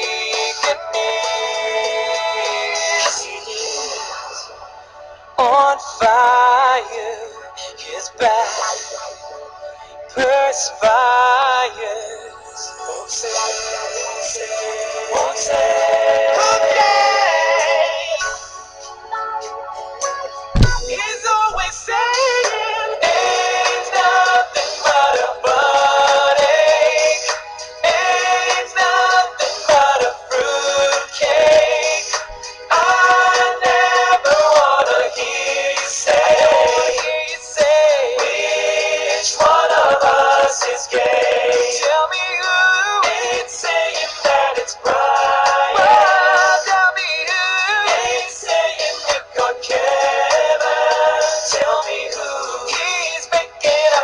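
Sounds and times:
wordless singing with vibrato: 0.0 - 4.6, 5.4 - 9.1, 10.1 - 19.5, 20.6 - 54.0
music: 0.0 - 54.0
song with sung melody: 0.0 - 54.0.

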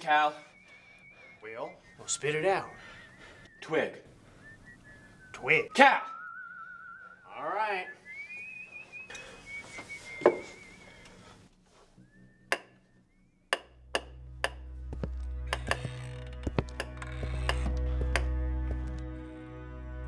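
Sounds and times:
wavering whistling: 0.0 - 14.6
low steady film score: 0.0 - 20.0.

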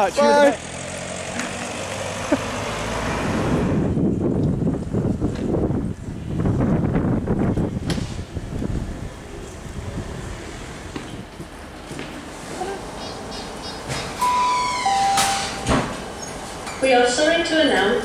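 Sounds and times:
car driving off: 0.0 - 11.4.

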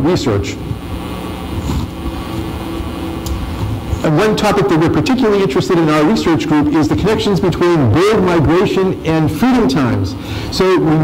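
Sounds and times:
faint steady tones: 0.0 - 11.0
low hall room hum: 0.0 - 11.0.

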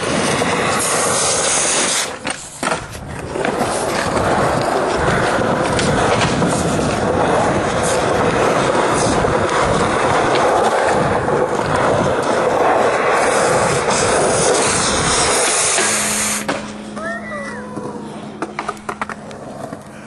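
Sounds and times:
skateboard wheels rolling on concrete: 0.0 - 20.0.

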